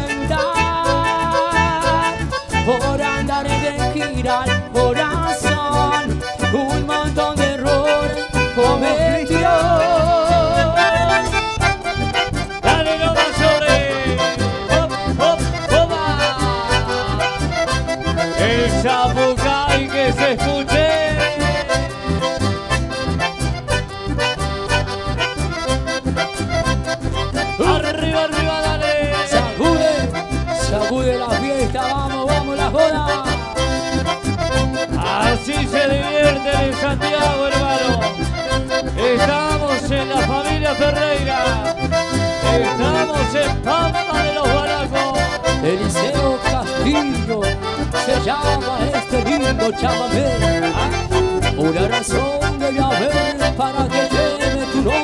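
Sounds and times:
accordion: 0.0 - 55.0
bass: 0.0 - 55.0
percussion beat: 50.1 - 52.4.

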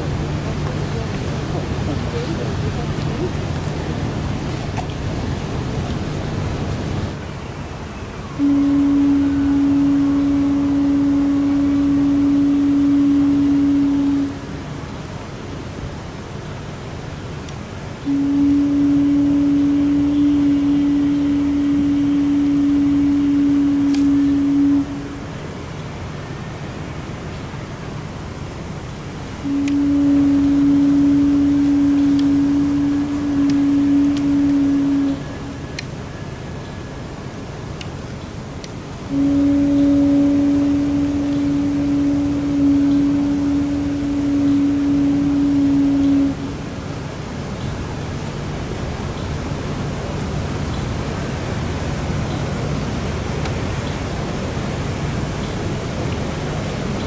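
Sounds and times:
street noise: 0.0 - 57.0
low horn blasts: 8.2 - 14.9, 18.0 - 25.7, 29.4 - 37.5, 39.0 - 47.5.

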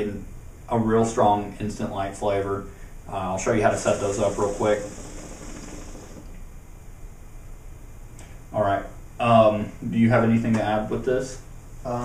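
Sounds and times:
hookah air hissing: 3.4 - 6.6
water bubbling in hookah base: 3.5 - 6.6.

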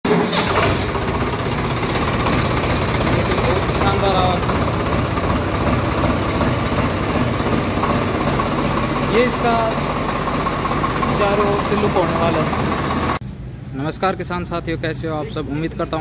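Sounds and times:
diesel engine idling: 0.1 - 13.2.

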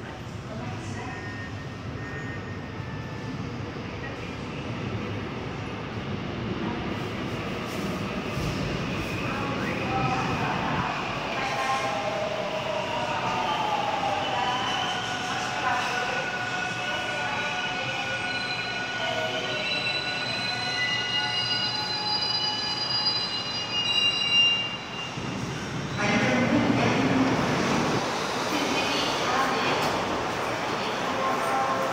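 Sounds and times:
train braking to a stop: 0.9 - 4.3, 7.0 - 28.0.

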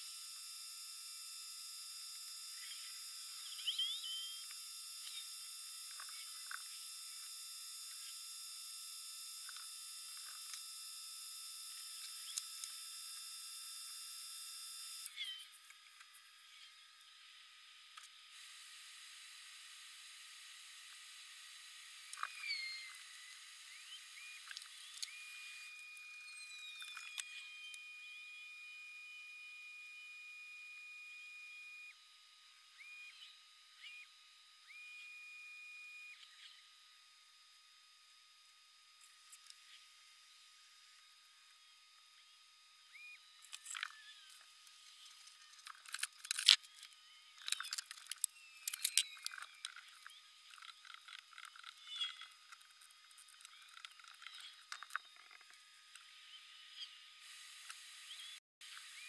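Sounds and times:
high-pitched whine: 0.0 - 59.0.

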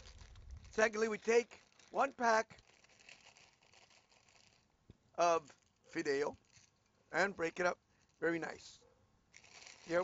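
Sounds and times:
plastic packet rustling: 0.0 - 4.8, 5.4 - 7.1, 9.3 - 10.0.

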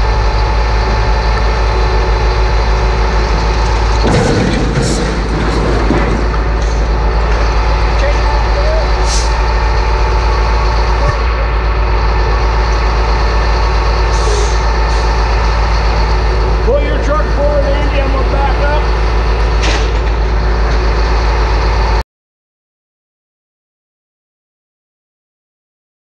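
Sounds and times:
diesel engine running loudly: 0.0 - 22.0.

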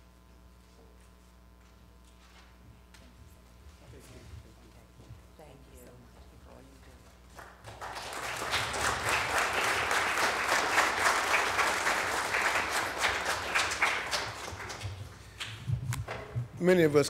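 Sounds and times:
audience applauding: 7.3 - 15.8.

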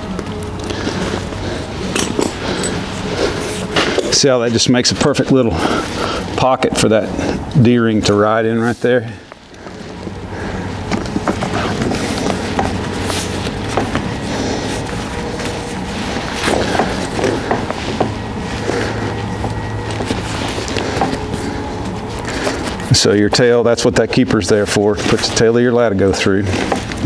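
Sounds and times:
steady low hum: 0.0 - 27.0
leather strap rustling: 0.2 - 4.1, 10.8 - 22.9.

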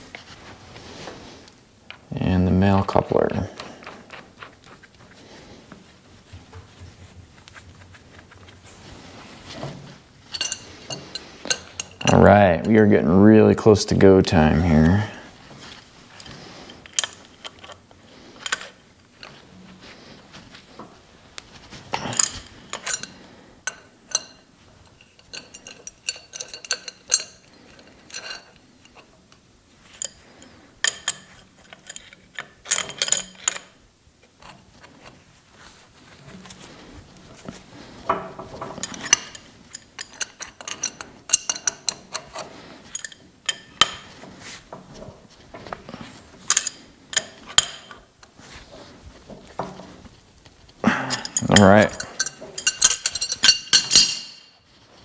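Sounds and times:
wrench clinking on metal fittings: 10.2 - 12.9, 21.9 - 29.1, 29.9 - 33.8, 38.5 - 44.1, 46.4 - 48.1, 51.1 - 54.7.

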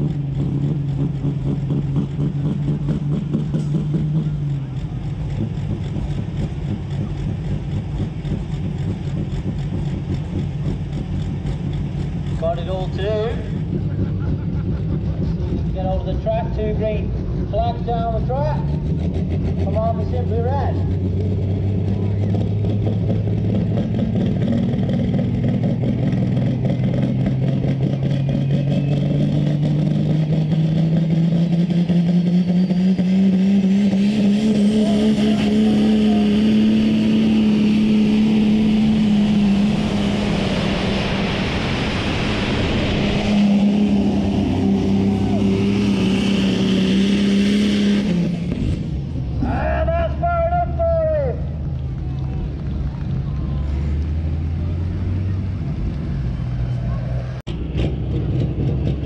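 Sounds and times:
tractor diesel engine at full power: 0.0 - 59.0.

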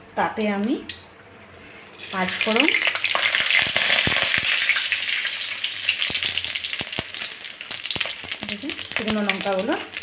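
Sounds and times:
seeds sizzling in hot oil: 1.7 - 10.0.

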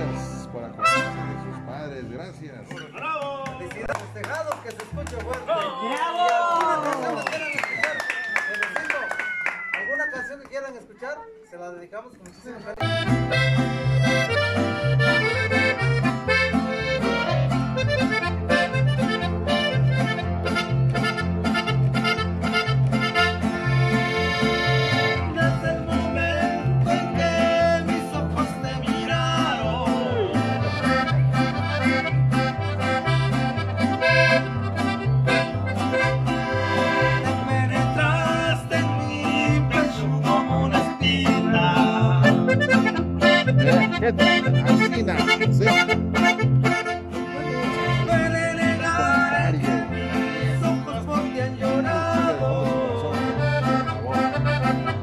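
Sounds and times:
accordion: 0.0 - 3.1, 12.5 - 55.0
plucked bass notes: 0.0 - 3.1, 12.8 - 55.0
strummed guitars: 0.0 - 3.6, 12.8 - 55.0.

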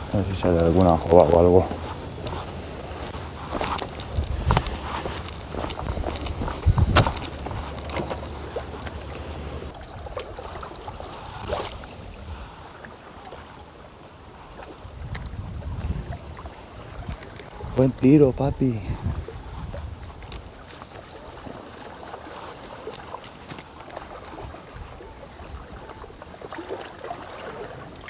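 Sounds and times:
wind on microphone: 0.0 - 13.0, 14.5 - 20.6
water lapping against rocks: 0.0 - 28.0
fishing gear knocking and clicking: 0.6 - 9.7.

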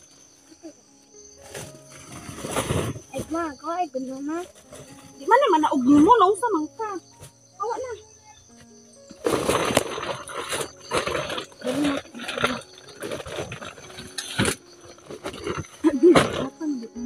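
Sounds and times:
plastic sacks rustling: 1.4 - 3.5, 9.1 - 16.6.

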